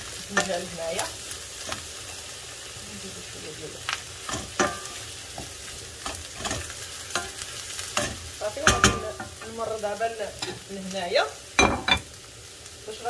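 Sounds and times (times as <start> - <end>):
vegetables sizzling in a pan: 0.0 - 13.0
wooden spoon knocking on pan: 8.0 - 9.4.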